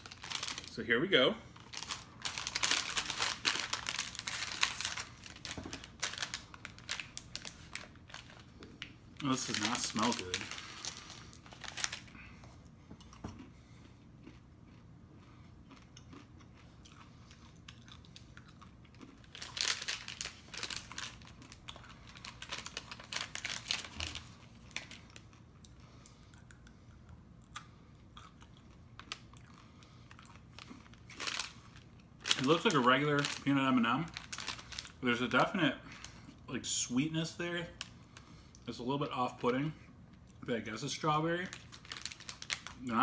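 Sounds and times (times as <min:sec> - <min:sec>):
chewing crunchy candy: 0:01.6 - 0:33.5.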